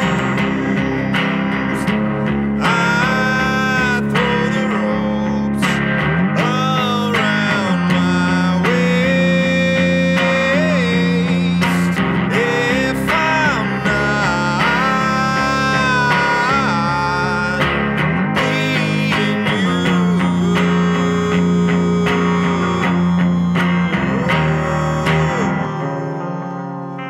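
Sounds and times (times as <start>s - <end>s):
electric guitar strumming: 0.0s - 27.0s
man singing: 0.0s - 27.0s.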